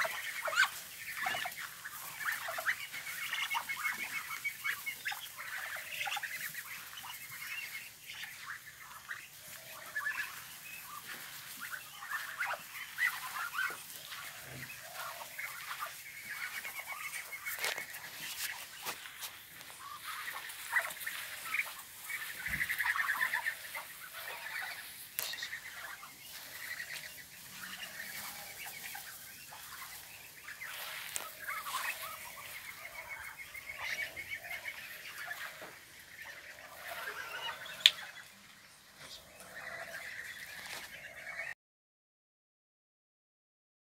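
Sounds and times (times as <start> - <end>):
ducks calling: 0.0 - 41.6.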